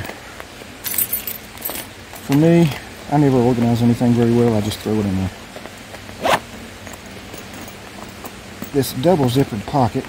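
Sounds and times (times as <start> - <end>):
zipper pulled: 6.2 - 6.5.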